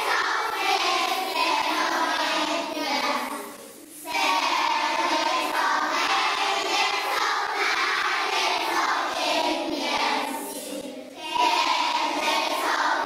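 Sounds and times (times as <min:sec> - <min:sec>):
children singing together: 0:00.0 - 0:13.0.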